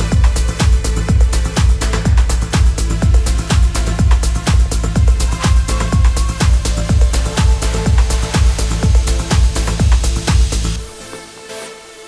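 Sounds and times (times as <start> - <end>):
kick drum: 0.0 - 10.9
electronic dance music: 0.0 - 12.0.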